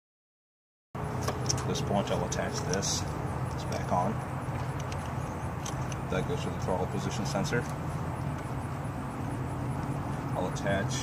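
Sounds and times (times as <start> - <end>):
low outdoor rumble: 1.0 - 11.0.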